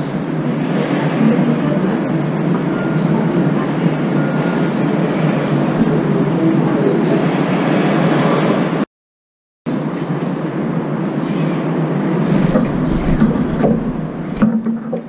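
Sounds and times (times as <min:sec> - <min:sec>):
steady outdoor rushing noise: 0:00.0 - 0:08.8, 0:09.7 - 0:15.0.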